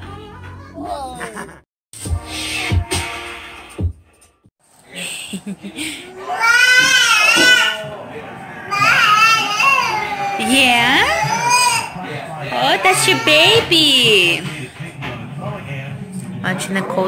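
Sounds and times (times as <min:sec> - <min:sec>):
background music: 0:02.0 - 0:04.4
voices: 0:04.9 - 0:15.8.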